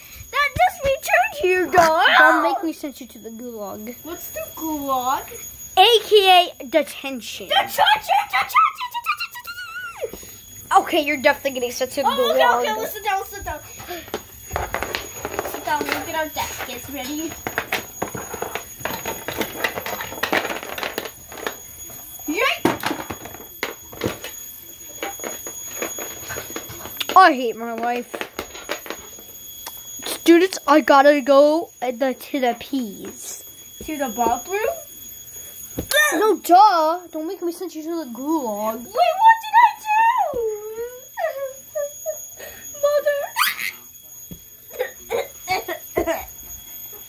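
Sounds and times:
faint high-pitched tone: 0:00.0 - 0:47.0
toys clicking on wooden floor: 0:11.6 - 0:21.9, 0:22.6 - 0:24.4, 0:25.0 - 0:30.6.

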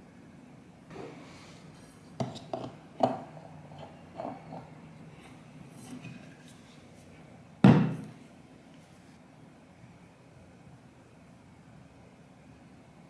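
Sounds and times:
tumbler thump: 0:07.6 - 0:08.1.

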